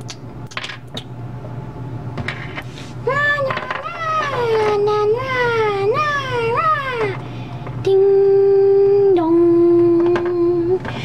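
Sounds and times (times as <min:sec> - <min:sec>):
person humming: 0:07.8 - 0:10.9.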